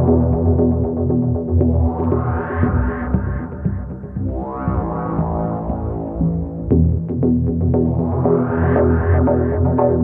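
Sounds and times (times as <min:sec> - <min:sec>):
deep bass: 0:00.0 - 0:10.0
synthesizer chords: 0:00.0 - 0:10.0.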